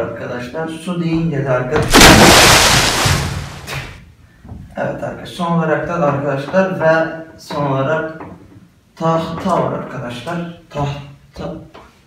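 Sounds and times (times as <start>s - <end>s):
water splashing down: 1.8s - 4.0s.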